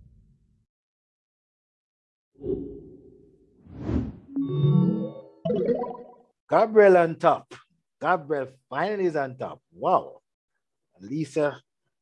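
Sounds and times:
rising whoosh: 0:02.5 - 0:04.3.

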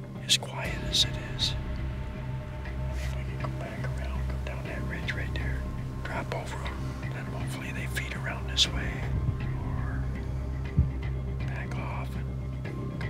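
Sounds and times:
man whispering: 0:00.0 - 0:10.4, 0:11.4 - 0:12.4
low steady drone: 0:00.0 - 0:13.0
soft background music: 0:00.0 - 0:13.0.

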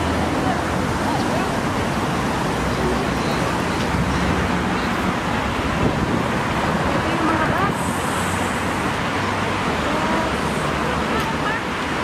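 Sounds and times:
road traffic rushing: 0:00.0 - 0:12.0.

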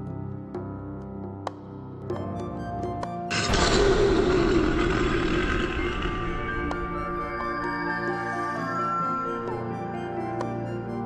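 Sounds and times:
ambient background music: 0:00.0 - 0:11.0
lion roar sound effect: 0:03.3 - 0:08.2.

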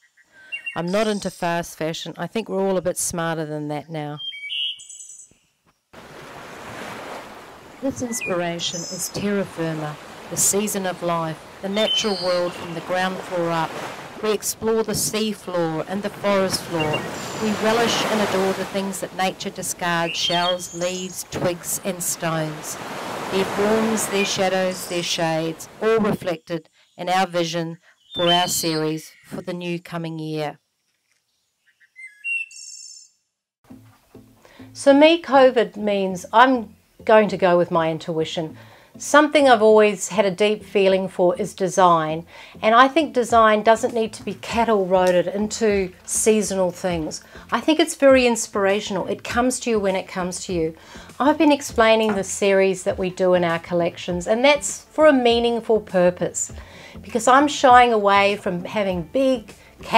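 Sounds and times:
bird whistling calls: 0:00.0 - 0:01.2, 0:04.2 - 0:05.3, 0:11.8 - 0:12.8, 0:16.8 - 0:17.6, 0:20.0 - 0:21.2, 0:31.6 - 0:33.2
bird trilling: 0:00.0 - 0:01.3, 0:04.2 - 0:05.4, 0:11.6 - 0:12.9, 0:16.7 - 0:17.7, 0:19.9 - 0:21.3, 0:31.6 - 0:33.2
ocean surf rushing: 0:06.0 - 0:26.1.

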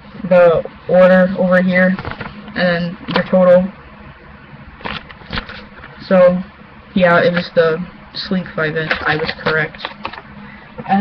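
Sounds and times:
paper rustling: 0:01.9 - 0:02.5, 0:04.8 - 0:06.0, 0:08.9 - 0:10.2.

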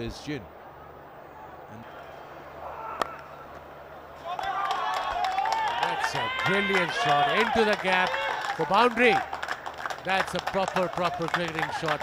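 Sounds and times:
low stadium background: 0:00.0 - 0:12.0
crowd shouting and cheering: 0:00.4 - 0:09.3, 0:10.1 - 0:12.0.

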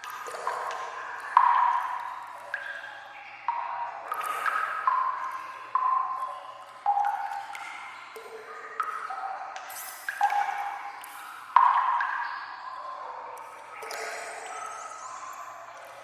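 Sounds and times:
water drops plinking into water: 0:00.0 - 0:16.0.

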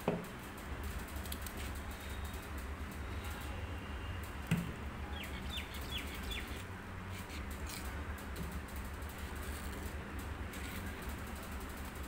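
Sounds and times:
bird chirping: 0:05.1 - 0:06.6.

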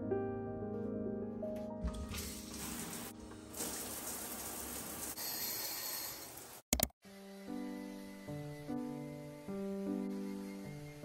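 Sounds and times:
shower water spraying: 0:01.8 - 0:06.6.

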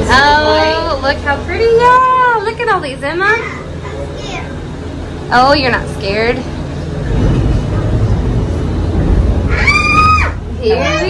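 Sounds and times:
gondola cabin rumble: 0:00.0 - 0:11.0
child squealing: 0:09.5 - 0:10.4.

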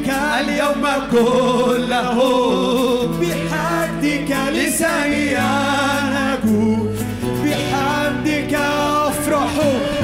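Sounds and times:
group of voices singing: 0:00.0 - 0:10.0
man singing lead: 0:00.0 - 0:10.0
small band playing: 0:00.0 - 0:10.0.

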